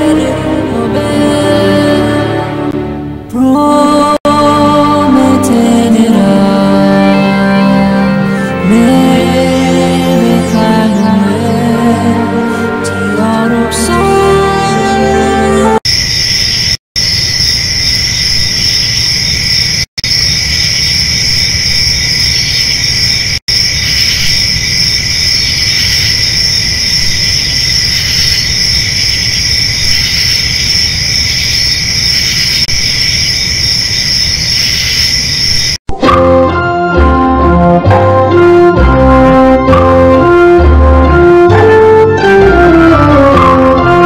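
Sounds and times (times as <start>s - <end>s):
crickets chirping: 15.8s - 35.8s.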